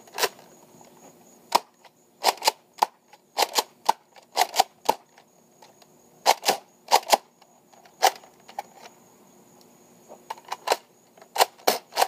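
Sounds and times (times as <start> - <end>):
plastic blaster clacks: 1.5 - 5.1, 6.3 - 7.3, 10.3 - 12.0.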